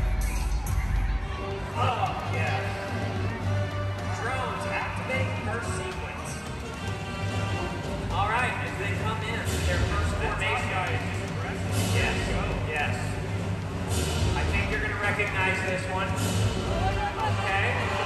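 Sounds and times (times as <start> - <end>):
live concert music: 0.0 - 18.0.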